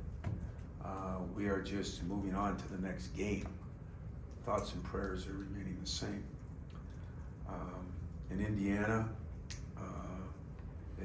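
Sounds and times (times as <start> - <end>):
man saying uh into microphone: 0.8 - 3.6, 4.4 - 6.4, 7.5 - 9.2, 9.8 - 10.4.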